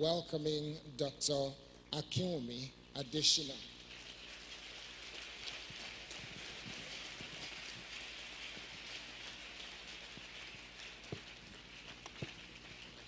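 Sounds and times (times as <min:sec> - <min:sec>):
audience applauding: 0:03.8 - 0:13.0.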